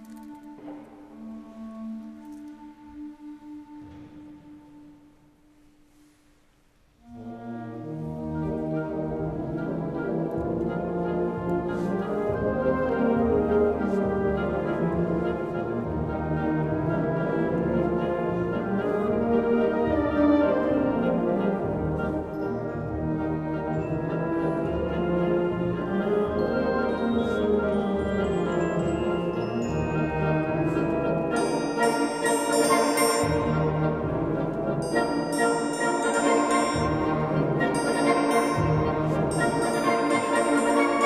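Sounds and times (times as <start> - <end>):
wind band playing: 7.0 - 41.0.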